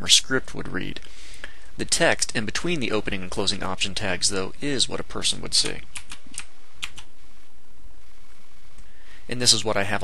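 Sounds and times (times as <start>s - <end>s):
steady hiss: 0.0s - 10.0s.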